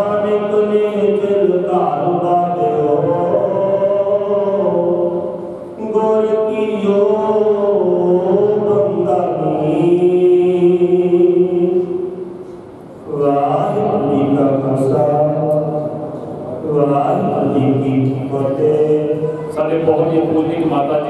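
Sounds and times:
man chanting into a microphone: 0:00.0 - 0:12.3, 0:13.0 - 0:21.0.

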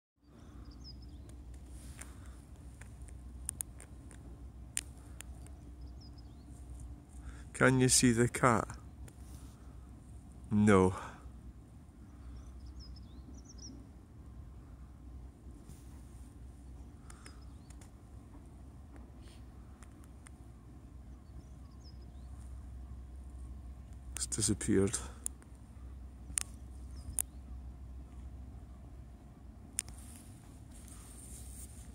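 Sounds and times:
steady low rumble: 0:00.2 - 0:31.9
sharp clicks: 0:01.2 - 0:05.6, 0:26.3 - 0:27.4.

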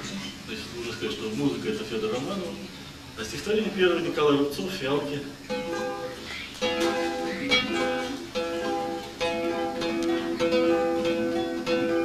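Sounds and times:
solo acoustic guitar plucking: 0:05.3 - 0:12.0.

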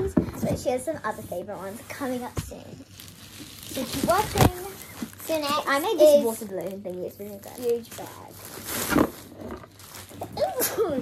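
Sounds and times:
plastic bag rustling: 0:00.6 - 0:11.0.

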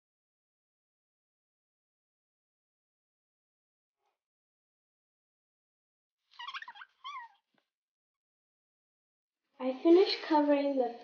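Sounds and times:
high wavering vocal calls: 0:06.3 - 0:07.4.

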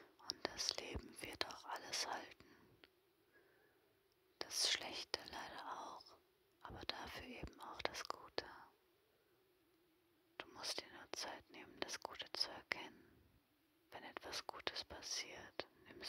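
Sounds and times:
woman whispering: 0:00.0 - 0:02.4, 0:04.4 - 0:08.7, 0:10.4 - 0:12.9, 0:13.9 - 0:16.0.

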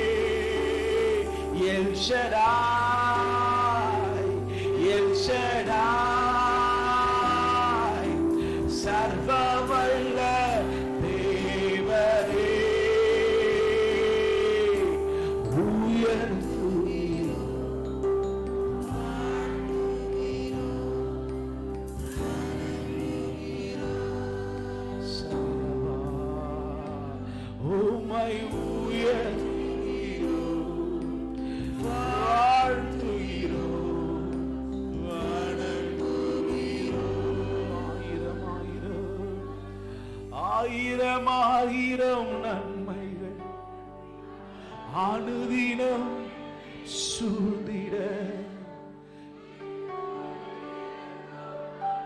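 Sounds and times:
man singing long note: 0:00.0 - 0:43.7
backing music: 0:00.0 - 0:52.0
sustained instrumental accompaniment: 0:00.0 - 0:52.0.

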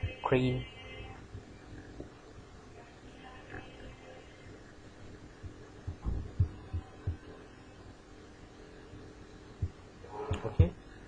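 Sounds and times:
faint steady hum: 0:00.0 - 0:11.0
dull low thumps on microphone: 0:05.4 - 0:07.3.

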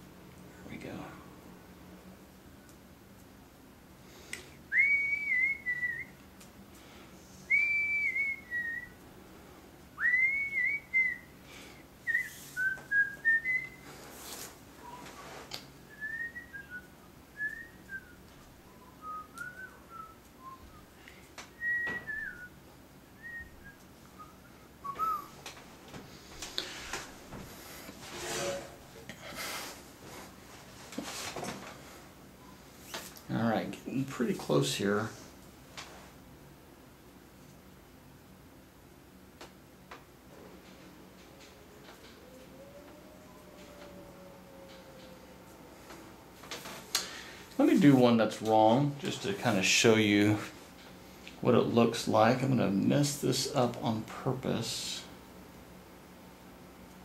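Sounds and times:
person whistling a tune: 0:04.7 - 0:06.1, 0:07.5 - 0:08.9, 0:10.0 - 0:11.2, 0:15.9 - 0:20.8, 0:21.6 - 0:22.5, 0:23.2 - 0:25.3
handling and rustling noises: 0:12.1 - 0:15.8, 0:24.9 - 0:33.4, 0:44.7 - 0:49.5.

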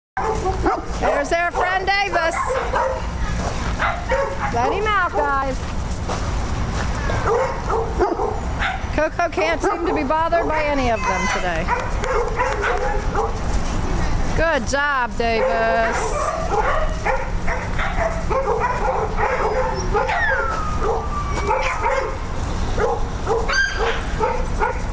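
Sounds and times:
dog yipping: 0:00.2 - 0:05.4, 0:07.0 - 0:08.9, 0:09.7 - 0:13.4, 0:15.4 - 0:22.2, 0:22.8 - 0:24.9
dog whining: 0:10.5 - 0:13.3, 0:17.6 - 0:22.1, 0:23.4 - 0:24.0.

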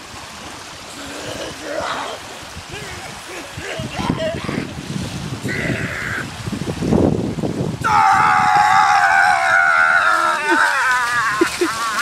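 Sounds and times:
water splashing from wading: 0:00.0 - 0:07.0, 0:08.2 - 0:12.0
man screaming: 0:07.8 - 0:12.0.

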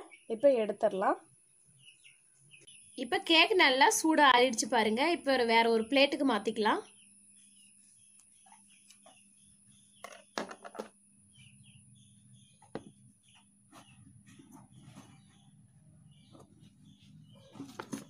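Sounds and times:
birds chirping: 0:00.0 - 0:18.0.

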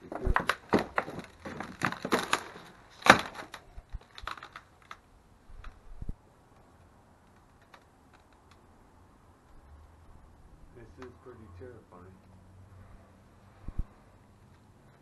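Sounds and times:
broken wood and debris crunching: 0:00.0 - 0:05.8, 0:07.2 - 0:08.7.

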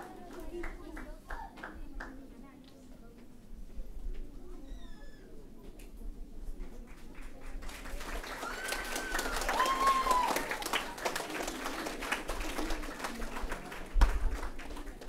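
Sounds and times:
audience clapping: 0:06.9 - 0:15.0.

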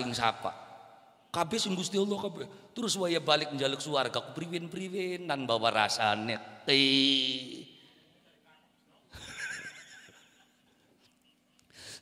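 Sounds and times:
man laughing into a microphone: 0:09.1 - 0:11.6.

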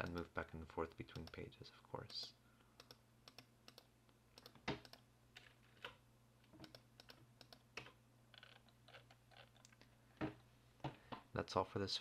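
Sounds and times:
keyboard and mouse clicks: 0:02.1 - 0:09.8.

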